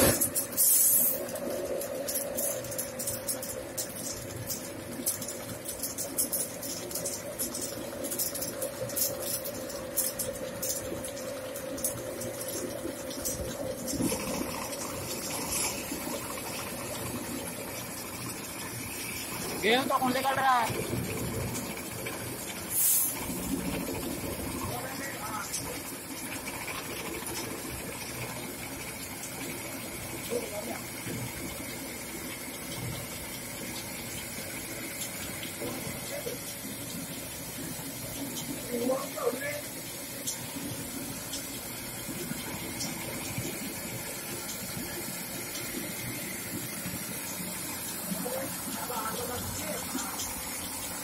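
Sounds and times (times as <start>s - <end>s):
stone flour mill grinding grain: 0.0s - 31.3s
short hiss: 0.5s - 1.2s.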